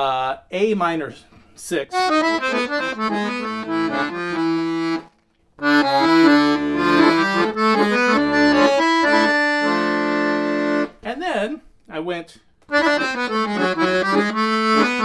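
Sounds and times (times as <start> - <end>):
accordion melodic run with chords: 1.9 - 11.0, 12.6 - 15.0.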